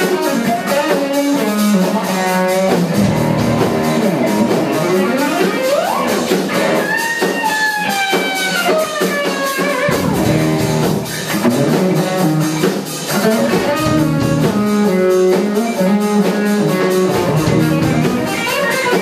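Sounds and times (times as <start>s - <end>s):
electric bass: 0.0s - 8.8s, 9.6s - 19.0s
drum kit: 0.0s - 19.0s
electric guitar: 0.0s - 19.0s.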